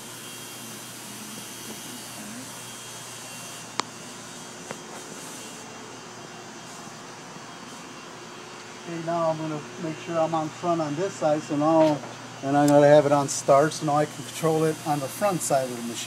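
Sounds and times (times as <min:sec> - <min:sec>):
machine shop hum: 0:00.0 - 0:16.0.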